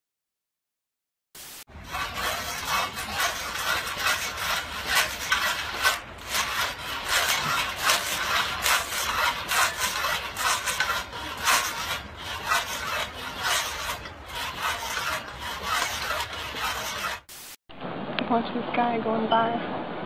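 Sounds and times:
saw blade cutting log: 1.7s - 17.3s.

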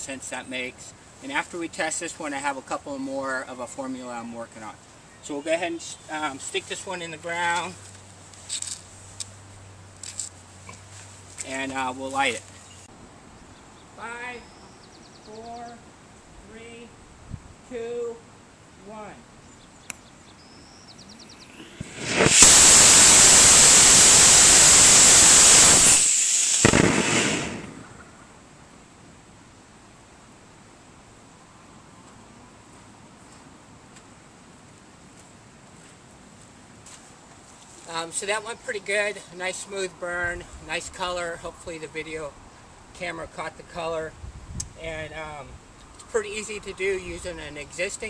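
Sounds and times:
rocket motor rushing hiss: 21.5s - 28.1s
short scrape: 21.6s - 23.3s
rocket motor ignition pop: 21.6s - 28.0s.

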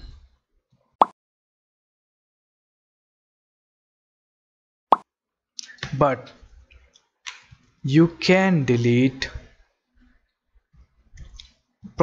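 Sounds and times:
man speaking: 5.6s - 6.4s, 7.9s - 9.5s.

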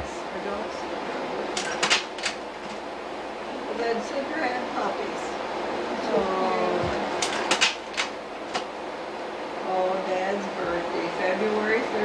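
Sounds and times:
projector fan hum: 0.0s - 12.0s.

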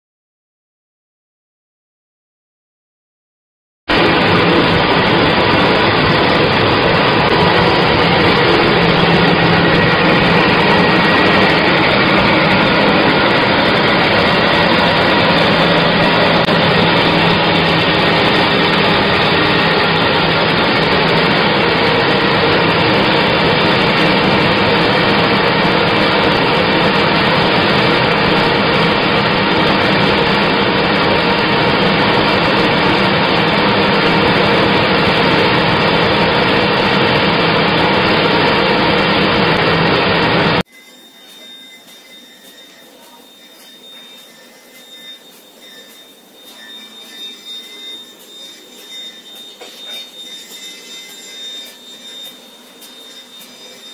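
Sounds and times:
low hum: 3.9s - 50.4s
paper slitting machine running: 3.9s - 53.9s.

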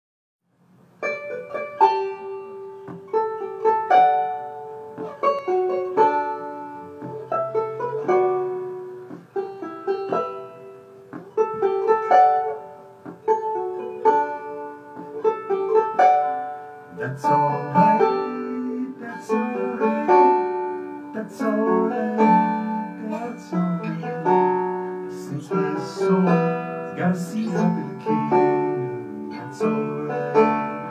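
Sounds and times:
banjo picking slow melody: 0.8s - 30.9s.

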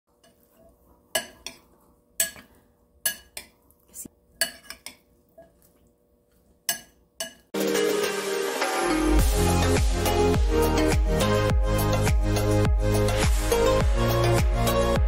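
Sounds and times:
metal spoon clinking ceramic bowl: 0.2s - 3.6s, 4.4s - 5.6s, 6.7s - 7.5s
music: 7.6s - 15.0s.

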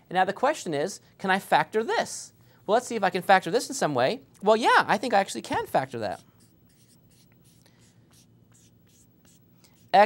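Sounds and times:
low room hum: 0.0s - 10.0s
marker writing on whiteboard: 5.5s - 10.0s.

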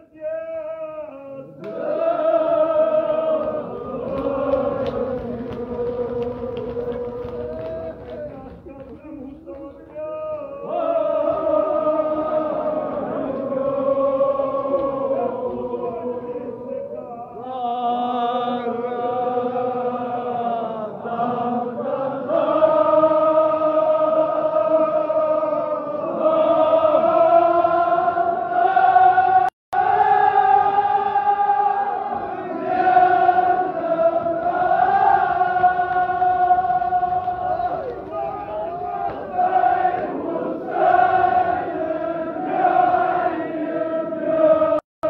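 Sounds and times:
men chanting in unison: 0.0s - 44.8s.

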